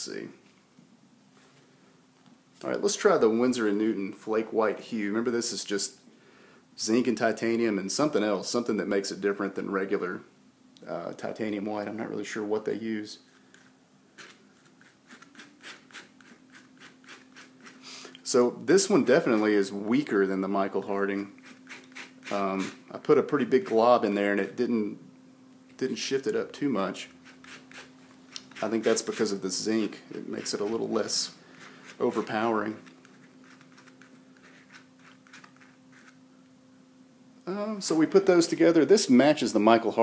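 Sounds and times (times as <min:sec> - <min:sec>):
palette knife scraping paint on paper: 0:13.4 - 0:17.8, 0:21.4 - 0:22.8, 0:27.2 - 0:29.4, 0:31.5 - 0:36.2.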